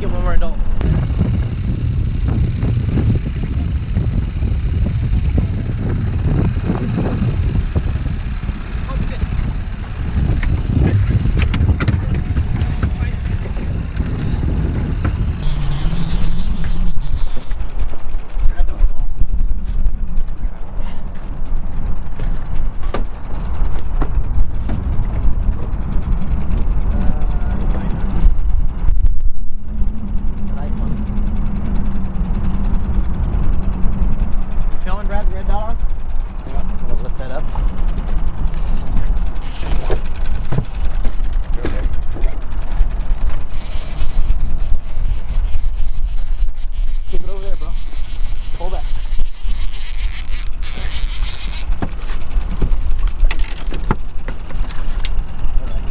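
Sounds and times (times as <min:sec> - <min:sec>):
outboard motor running: 0:00.0 - 0:55.9
wind: 0:00.0 - 0:55.9.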